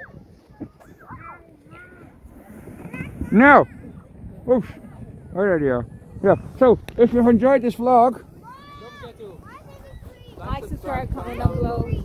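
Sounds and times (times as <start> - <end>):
wind rumble on microphone: 0.0 - 12.0
distant children calling out: 8.2 - 10.7.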